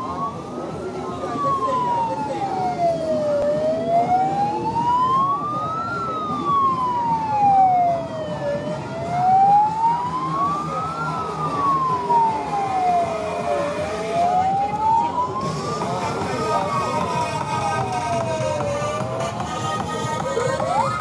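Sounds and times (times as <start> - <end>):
street and crowd noise: 0.0 - 21.0
wailing siren: 0.0 - 21.0.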